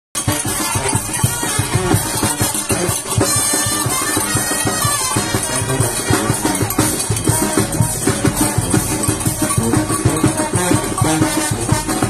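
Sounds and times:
carnival music with drums and reeds: 0.2 - 12.0.

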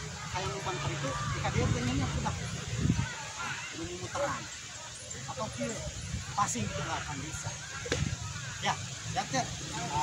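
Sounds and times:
boys chattering: 0.0 - 10.0.

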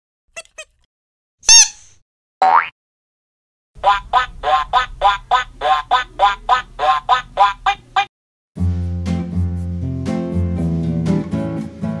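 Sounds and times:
cartoon duck quacks: 0.4 - 0.8, 1.5 - 2.7, 3.8 - 8.1.

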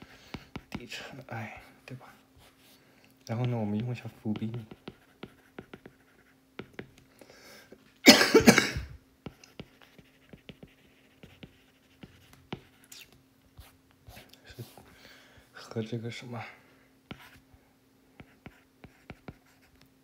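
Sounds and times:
person coughing: 8.0 - 9.0.

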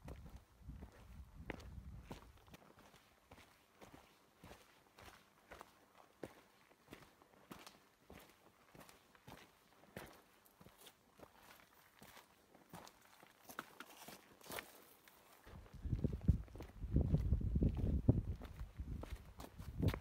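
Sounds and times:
footsteps on rocky trail: 0.0 - 20.0.

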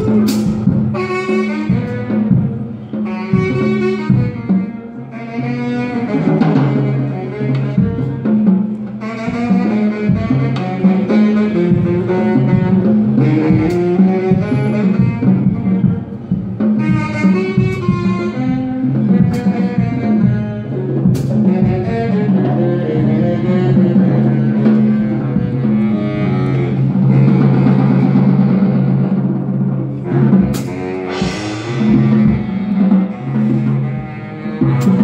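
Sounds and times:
instrumental duo music: 0.0 - 35.0
sharp percussive strikes: 30.6 - 33.8.

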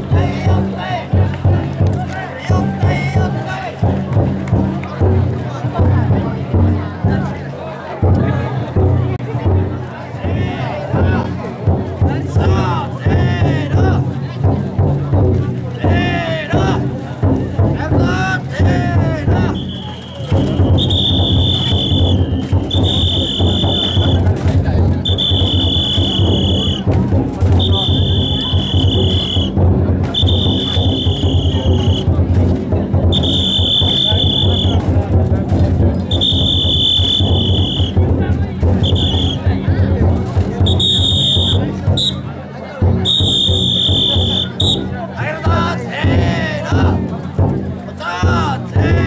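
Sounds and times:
taiko drum beaten: 0.0 - 7.4, 8.0 - 49.0
carriers' voices: 0.0 - 49.0
whistle blasts: 19.5 - 24.2, 25.0 - 26.9, 27.6 - 32.1, 33.1 - 34.8, 36.1 - 38.0, 38.8 - 39.5, 40.6 - 42.2, 43.0 - 44.9.

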